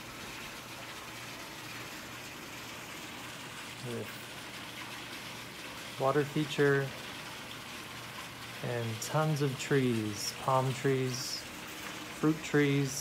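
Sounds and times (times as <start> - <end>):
water falling into a pool: 0.0 - 13.0.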